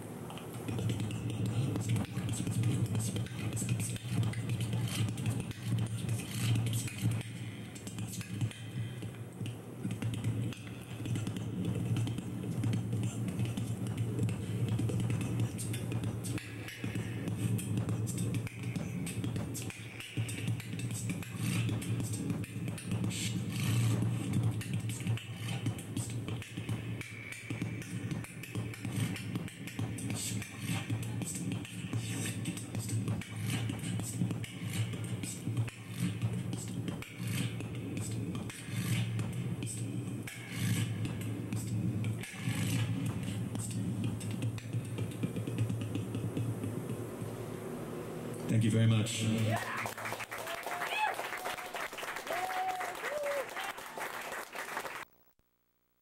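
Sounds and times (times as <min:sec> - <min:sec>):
experimental electronic music: 0:00.7 - 0:48.3
low electronic drone: 0:25.2 - 0:48.7.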